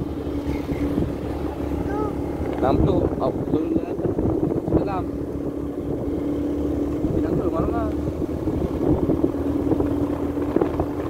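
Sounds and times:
motorcycle engine droning: 0:00.0 - 0:11.0
wind rumble on microphone: 0:00.0 - 0:11.0.

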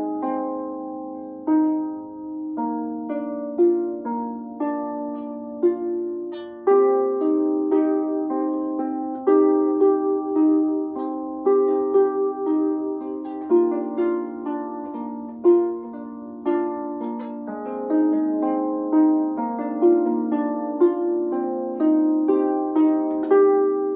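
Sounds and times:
solo harp improvising: 0:00.0 - 0:23.9.

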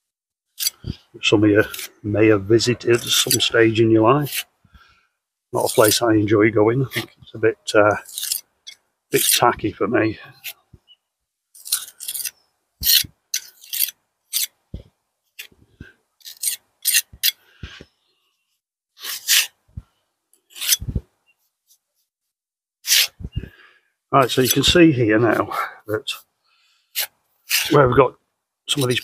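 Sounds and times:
trowel scraping mortar: 0:00.6 - 0:01.0, 0:01.6 - 0:01.9, 0:02.9 - 0:03.5, 0:04.2 - 0:04.5, 0:05.6 - 0:06.0, 0:08.0 - 0:08.5, 0:09.2 - 0:09.4, 0:11.6 - 0:14.6, 0:16.2 - 0:17.4, 0:19.0 - 0:19.6, 0:20.5 - 0:21.0, 0:22.8 - 0:23.2, 0:24.2 - 0:24.7, 0:26.9 - 0:27.9, 0:28.8 - 0:29.0.

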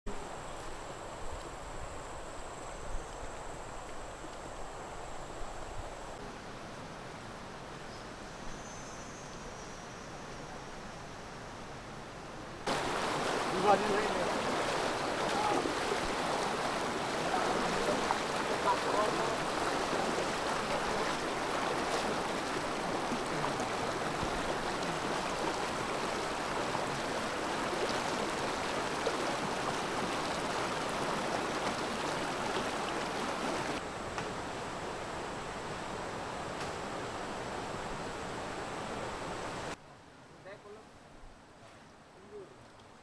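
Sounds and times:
river rushing over stones: 0:12.6 - 0:39.8.

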